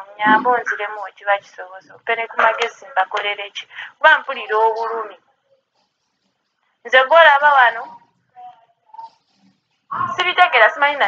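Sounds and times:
person speaking: 0.0 - 3.4.

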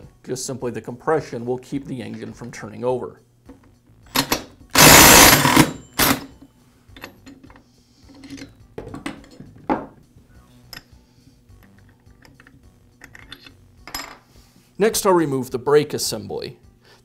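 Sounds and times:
impact driver hammering: 4.1 - 6.2.

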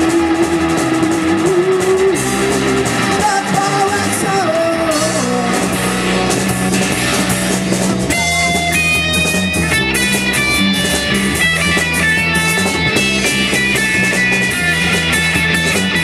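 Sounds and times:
drums: 0.0 - 16.0
electric bass: 0.0 - 16.0
electric guitar: 0.0 - 16.0.

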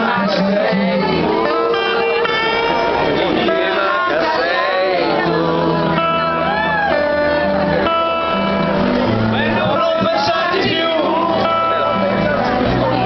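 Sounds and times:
acoustic guitar and piano: 0.0 - 13.0
audience calling and singing: 0.0 - 13.0.

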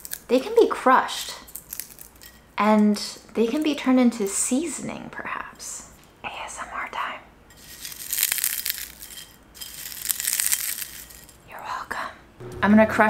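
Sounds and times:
dry skins crackling when crushed: 0.0 - 0.3, 1.5 - 2.3, 7.6 - 11.4.

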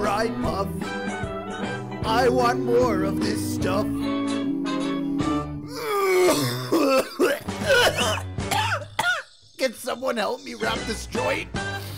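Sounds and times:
song backing music: 0.0 - 8.7
held sung note: 2.0 - 6.4
man coughing: 5.8 - 9.4.

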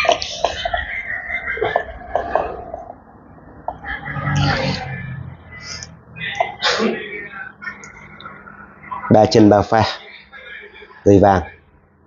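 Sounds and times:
man's voice: 8.8 - 11.6.

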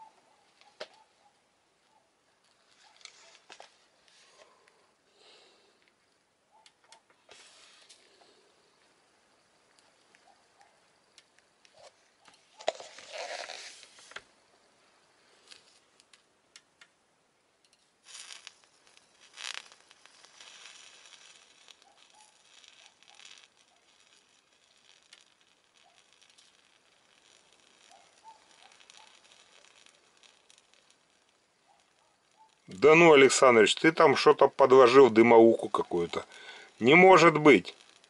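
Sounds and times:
electrical crackling and sizzling: 7.0 - 17.0, 17.7 - 38.0.

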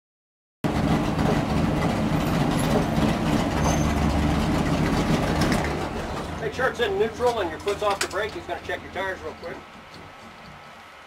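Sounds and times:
car engine idling: 0.7 - 11.0.

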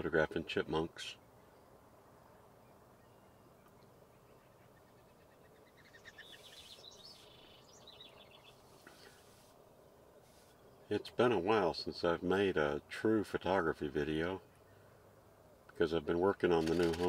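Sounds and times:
small bird chirping: 2.6 - 9.5.

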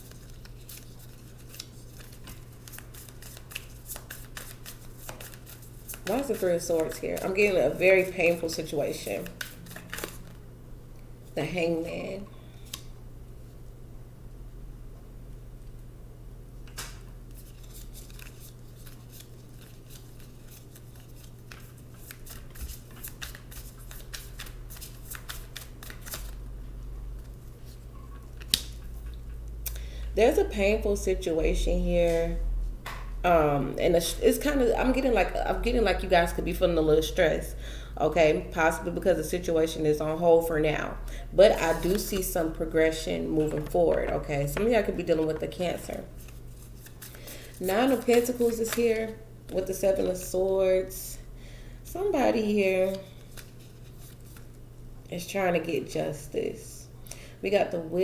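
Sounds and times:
cards being shuffled: 0.0 - 7.3, 9.0 - 10.4, 16.7 - 26.4, 41.6 - 42.3, 46.2 - 48.9
steady low hum: 0.0 - 58.0.

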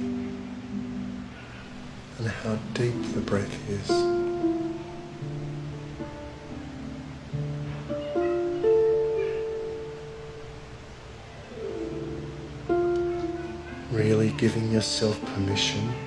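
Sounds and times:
harp played softly: 2.1 - 16.0.

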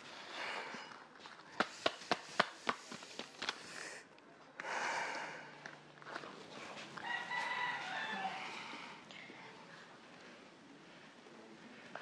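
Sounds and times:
rooster crowing: 7.0 - 8.9.

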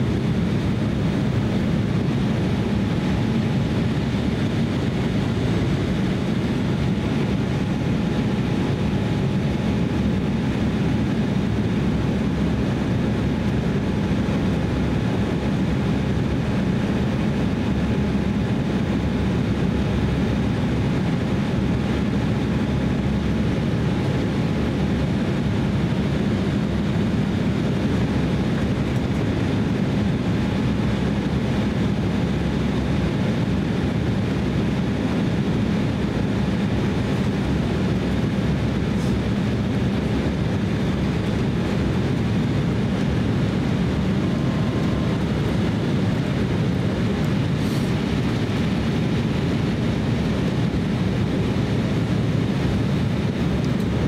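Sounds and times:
faint steady whine: 0.0 - 54.0
jet engine rumble: 0.0 - 54.0
air rushing past fuselage: 40.8 - 50.9.

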